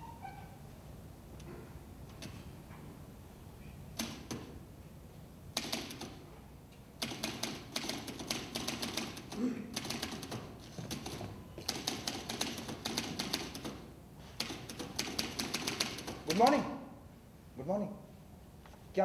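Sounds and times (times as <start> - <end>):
typewriter key strikes: 4.0 - 4.5, 5.6 - 6.2, 7.0 - 16.5.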